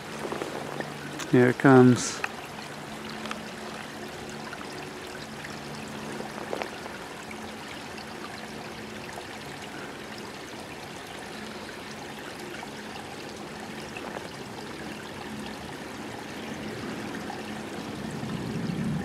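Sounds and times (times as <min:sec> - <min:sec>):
creek water trickling over rocks: 0:00.0 - 0:19.0.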